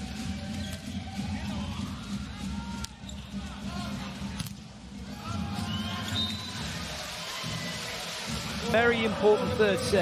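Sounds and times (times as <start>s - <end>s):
shoes squeaking on court: 3.0s - 3.5s.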